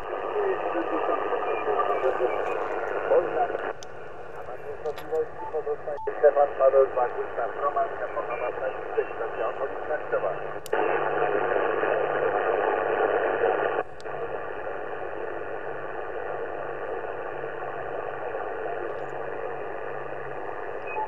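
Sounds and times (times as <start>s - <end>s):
radio static hiss: 0.0s - 21.0s.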